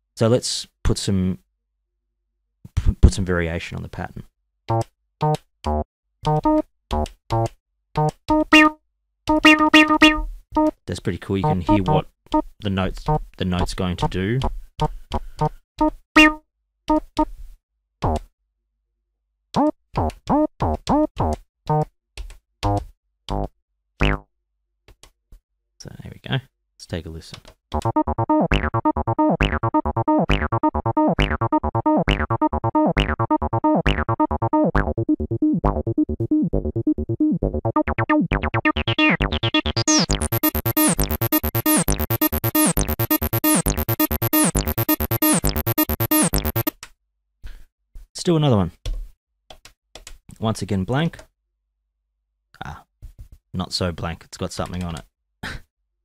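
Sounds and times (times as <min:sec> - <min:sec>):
synthesizer bass notes sliding up: 0:09.4 - 0:10.7, 0:27.8 - 0:46.7.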